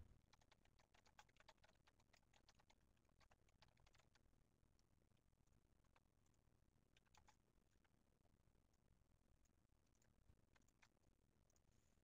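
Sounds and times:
faint computer keyboard typing: 0:00.0 - 0:12.0.

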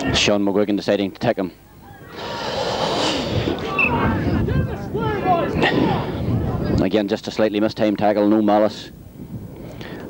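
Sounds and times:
crowd shouting: 0:01.9 - 0:06.2.

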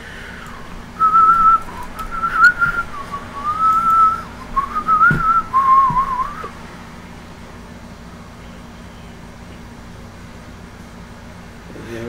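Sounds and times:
person whistling a tune: 0:01.0 - 0:06.5.

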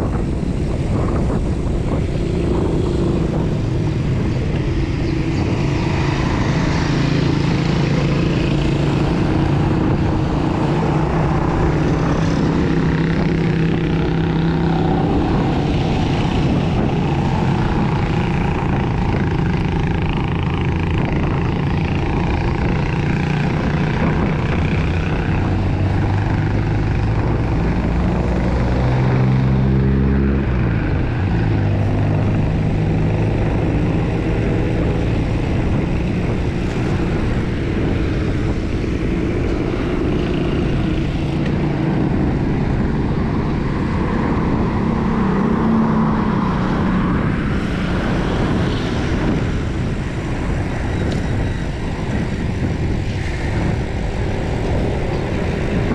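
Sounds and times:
traffic engines droning: 0:00.0 - 0:55.9
vehicle passing close by: 0:00.0 - 0:55.9
wind on microphone: 0:00.0 - 0:55.9.

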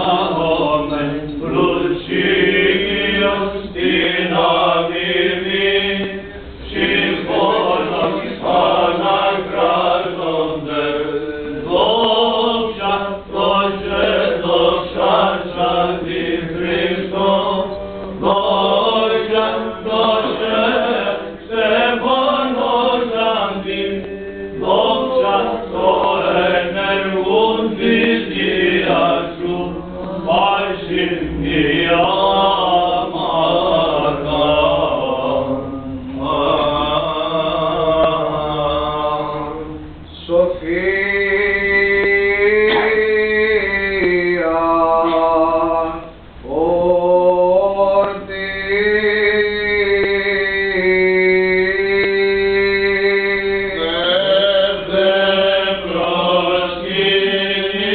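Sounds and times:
chanters singing slow melody: 0:00.0 - 0:57.9.

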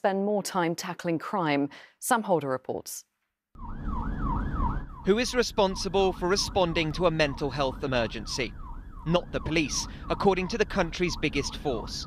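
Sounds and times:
police siren yelping: 0:03.6 - 0:12.0
engine and road rumble: 0:03.7 - 0:11.8.

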